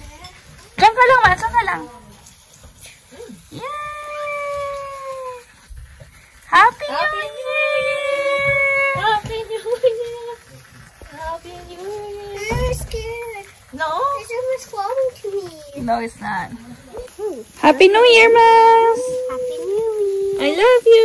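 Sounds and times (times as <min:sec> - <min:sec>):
high-pitched drawn-out cries: 0:03.2 - 0:05.6, 0:06.4 - 0:10.2, 0:16.9 - 0:20.8.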